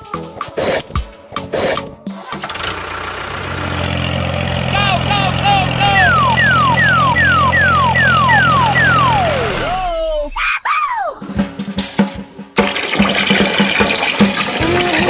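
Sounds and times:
engine-like hum: 2.0s - 10.4s
short rising falling chirps: 5.8s - 10.6s
quick falling whistles: 6.0s - 10.7s.

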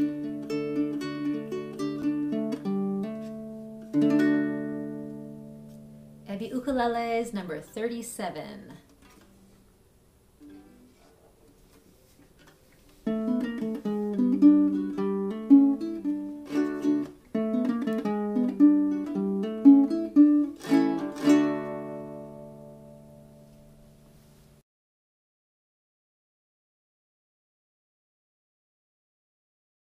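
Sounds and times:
ukulele plucked notes and chords: 0.0s - 6.3s, 10.4s - 11.2s, 12.4s - 24.3s.

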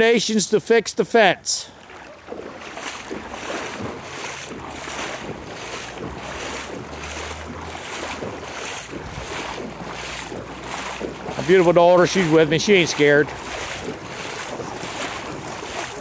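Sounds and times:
feet wading through water: 1.1s - 16.0s.

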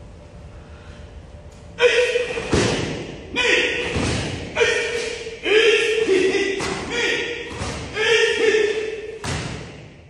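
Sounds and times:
heavy thumps: 2.3s - 3.2s, 3.8s - 4.6s, 6.1s - 8.1s, 9.2s - 10.0s.

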